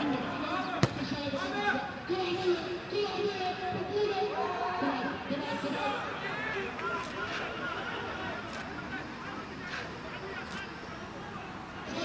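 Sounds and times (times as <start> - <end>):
football being kicked: 0.8 - 1.2.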